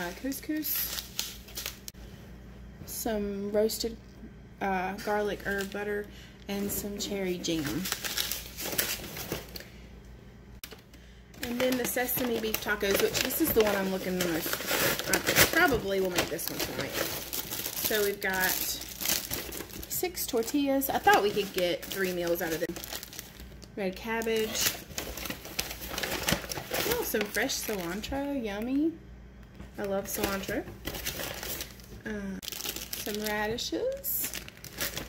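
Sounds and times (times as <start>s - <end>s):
rustling of food packaging: 6.6s - 9.6s, 10.7s - 28.4s, 29.7s - 35.0s.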